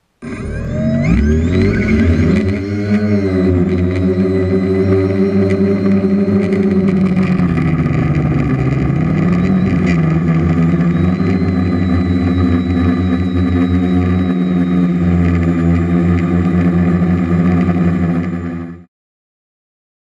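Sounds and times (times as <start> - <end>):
quadcopter propellers whirring: 0.2 - 18.9.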